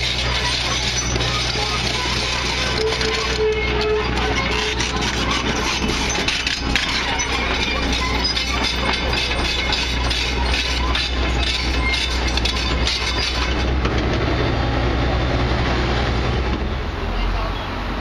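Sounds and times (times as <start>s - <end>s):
metal clanking and rattling: 0.0s - 14.4s
excavator diesel engine hum: 0.0s - 18.0s.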